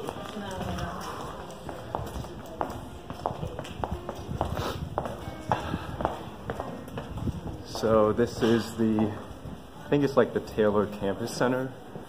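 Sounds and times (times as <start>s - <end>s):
footsteps on hard floor: 0.0s - 10.0s
voices: 0.0s - 12.0s.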